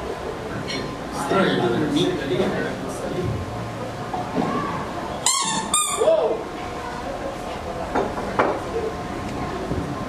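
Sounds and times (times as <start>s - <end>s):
faint voices: 0.0s - 10.0s
high-pitched squeaks: 5.2s - 6.1s.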